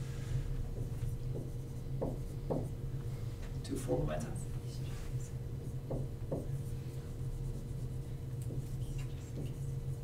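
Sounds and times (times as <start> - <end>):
low room hum: 0.0 - 10.0
whiteboard marker writing: 0.6 - 2.8, 5.6 - 10.0.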